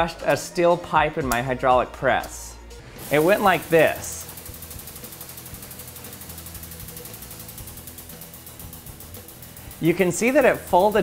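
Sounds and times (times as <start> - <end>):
hydraulic press humming and pulsing: 2.9 - 11.0.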